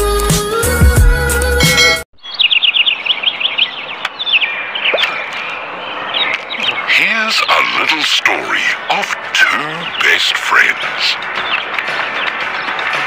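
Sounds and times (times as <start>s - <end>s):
birds chirping: 2.1s - 13.0s.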